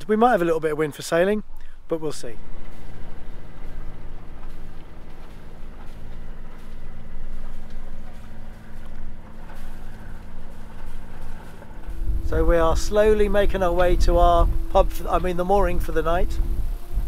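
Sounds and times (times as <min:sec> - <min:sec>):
boat engine humming: 0:00.0 - 0:17.0
water noise: 0:00.0 - 0:17.0
wind: 0:00.0 - 0:17.0.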